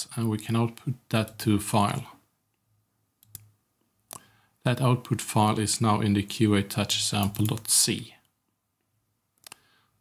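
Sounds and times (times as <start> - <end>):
computer mouse clicking: 3.2 - 3.5, 4.1 - 4.3, 7.2 - 7.7, 9.4 - 9.6.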